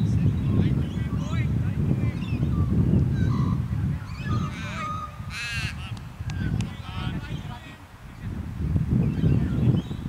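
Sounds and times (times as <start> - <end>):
birds calling: 2.0 - 7.9, 8.7 - 10.0
harsh crow-like call: 4.5 - 5.9.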